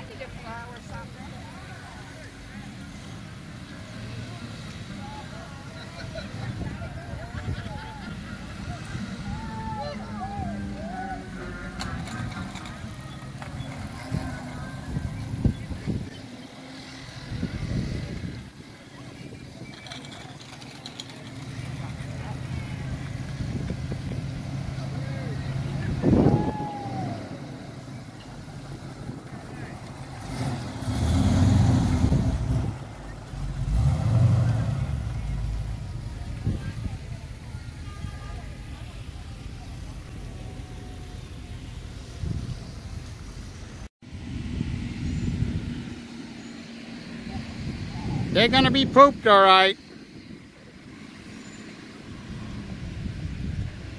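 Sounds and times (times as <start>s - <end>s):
car engine revving: 8.1s - 43.8s.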